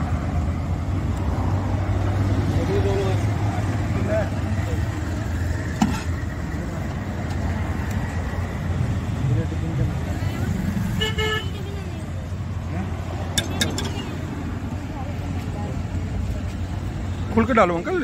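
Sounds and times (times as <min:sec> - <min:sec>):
street traffic rumble: 0:00.0 - 0:18.0
vehicle horn toot: 0:11.0 - 0:11.7
steel ladle clinking on pot: 0:13.4 - 0:14.1.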